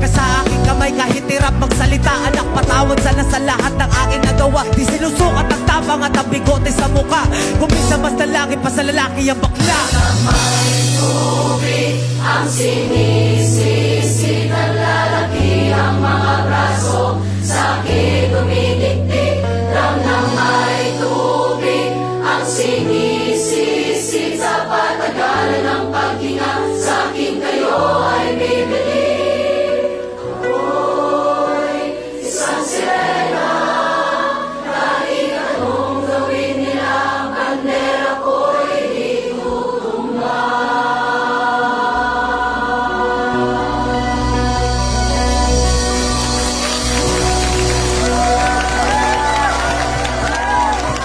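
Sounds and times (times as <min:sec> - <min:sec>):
choir of young voices singing: 0:09.6 - 0:46.0.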